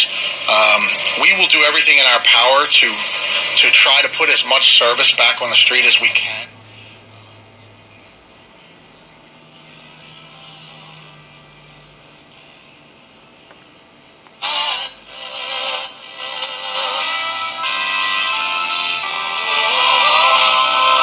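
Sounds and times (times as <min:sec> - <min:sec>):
radio static hiss: 0:00.0 - 0:07.5
music from radio: 0:00.0 - 0:21.0.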